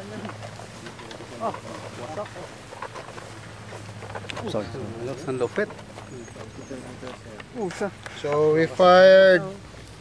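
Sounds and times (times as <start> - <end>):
men chattering: 0.0 - 9.8.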